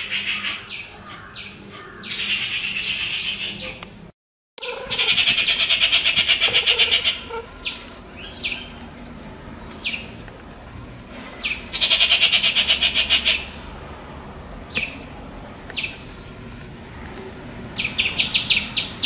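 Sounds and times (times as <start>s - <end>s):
bird chattering call: 0.0s - 3.8s, 4.6s - 8.8s, 11.4s - 13.6s.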